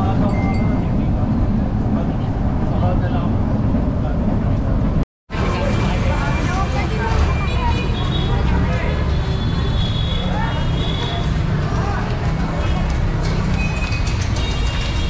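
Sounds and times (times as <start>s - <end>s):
train carriage rumbling: 0.0s - 9.8s, 10.4s - 15.0s
crowd talking: 0.0s - 15.0s.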